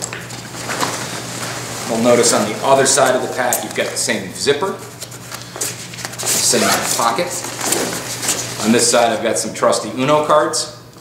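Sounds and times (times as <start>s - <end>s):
low steady hum: 0.0s - 11.0s
backpack fabric rustling: 0.4s - 4.2s, 4.8s - 9.1s.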